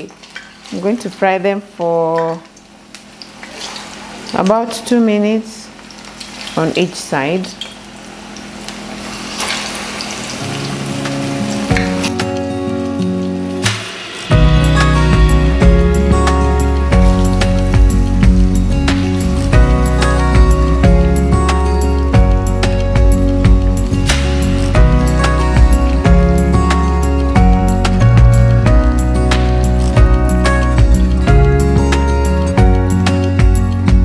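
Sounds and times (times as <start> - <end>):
plantain slices deep-frying in oil: 0.0 - 32.0
background music with steady beat: 11.0 - 34.0.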